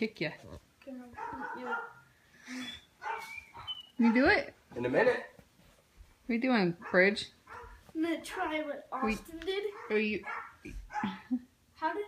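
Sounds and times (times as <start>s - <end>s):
dog barking: 1.1s - 2.1s, 3.0s - 5.0s, 6.8s - 7.8s, 9.7s - 11.2s
dog whining: 1.2s - 4.3s.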